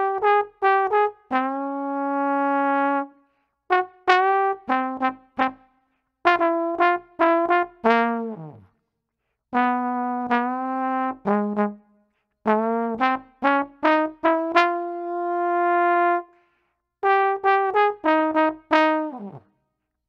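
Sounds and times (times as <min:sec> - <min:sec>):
trombone playing jazz figures: 0:00.0 - 0:03.1, 0:03.7 - 0:05.6, 0:06.2 - 0:08.7, 0:09.5 - 0:11.8, 0:12.4 - 0:16.3, 0:17.0 - 0:19.4.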